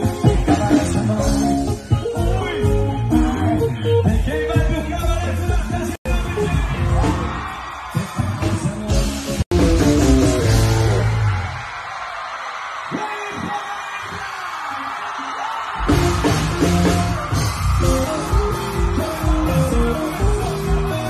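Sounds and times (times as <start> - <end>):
live band music: 0.0 - 11.4, 15.8 - 21.0
person singing: 17.8 - 21.0.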